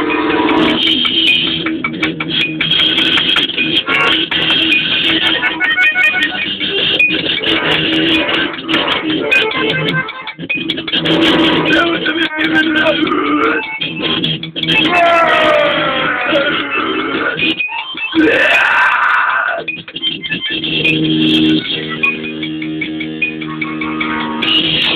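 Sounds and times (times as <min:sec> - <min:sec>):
button accordion chords: 0:00.0 - 0:01.2, 0:03.5 - 0:14.3, 0:20.1 - 0:24.9
electric guitar: 0:00.0 - 0:24.9.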